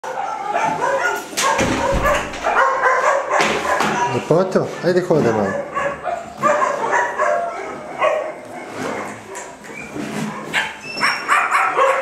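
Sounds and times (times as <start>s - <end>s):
dog yipping and whining: 0.1s - 4.3s, 5.2s - 12.0s.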